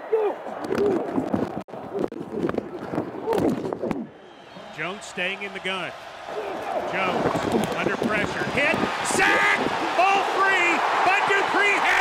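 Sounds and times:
stadium crowd noise: 0.0s - 12.0s
men talking: 4.6s - 12.0s
radio announcer commentating: 4.7s - 5.9s, 6.8s - 12.0s.

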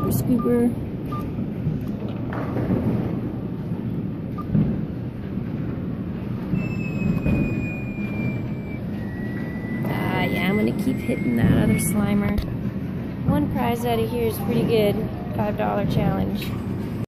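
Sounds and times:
low rumbling arcade machines: 0.0s - 17.0s
faint high electronic tone sliding: 6.6s - 12.4s.

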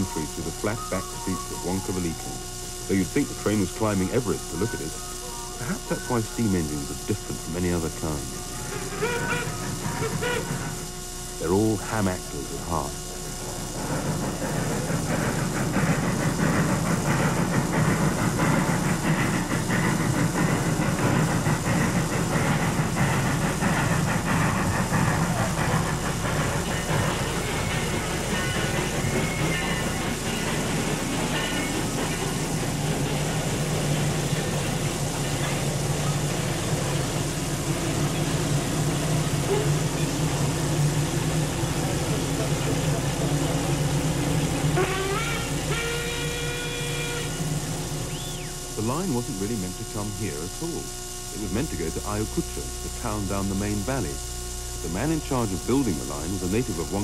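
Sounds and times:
steam locomotive chuffing: 0.0s - 57.0s.

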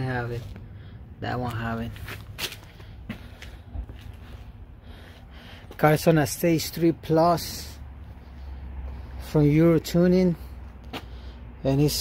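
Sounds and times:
low steady rumble: 0.0s - 12.0s
footsteps on concrete: 1.4s - 6.1s, 10.5s - 11.2s.

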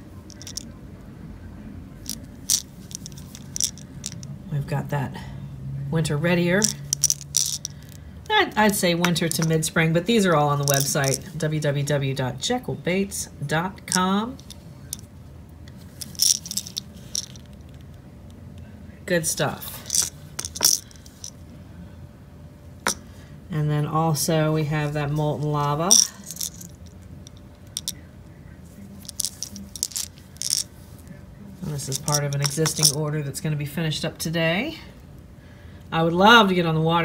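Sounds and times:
low steady hum: 0.0s - 37.0s
fishing lure rattling clicks: 0.3s - 0.7s, 2.1s - 4.3s, 6.6s - 8.0s, 9.3s - 9.5s, 16.0s - 17.6s, 19.9s - 21.3s, 25.9s - 28.0s, 29.1s - 30.6s, 31.9s - 33.0s
plastic lure crackling in hands: 0.3s - 0.7s.

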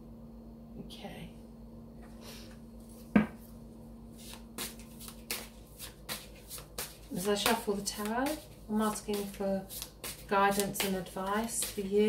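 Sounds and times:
cards being shuffled: 4.2s - 12.0s.

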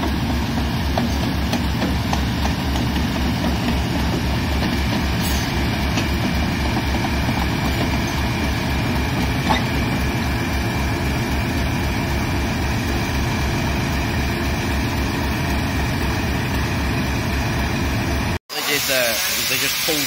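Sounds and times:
diesel locomotive engine idling: 0.0s - 20.0s.

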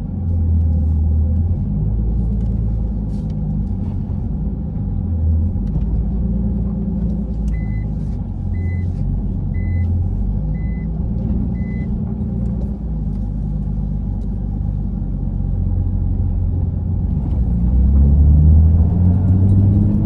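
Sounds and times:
car engine low rumble: 0.0s - 20.0s.

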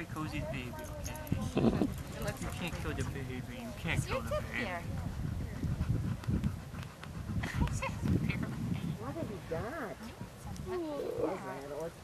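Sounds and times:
woman laughing: 7.4s - 8.4s.

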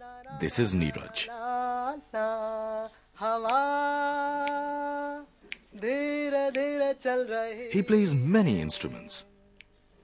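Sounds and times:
person singing long held notes: 0.0s - 9.7s.

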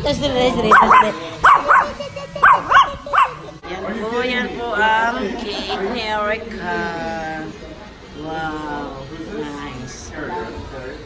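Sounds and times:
dog yipping barks: 0.6s - 3.6s.

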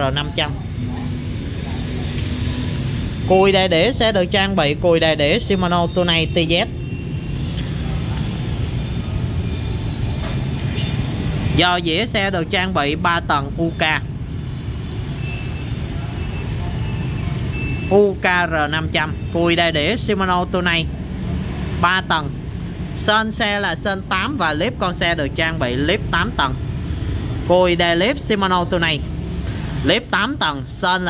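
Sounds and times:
low rumble of motor traffic: 0.0s - 31.0s
faint short high beeps: 6.8s - 11.6s.

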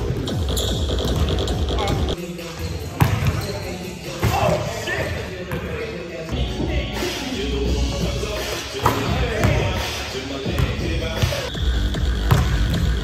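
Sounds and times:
background music: 0.0s - 13.0s
basketball bouncing on hardwood: 12.3s - 12.8s.

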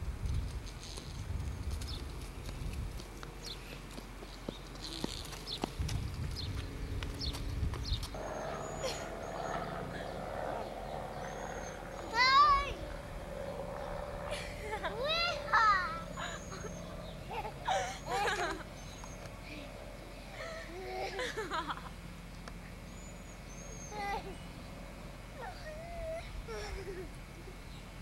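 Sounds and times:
outdoor background noise: 0.0s - 28.0s.

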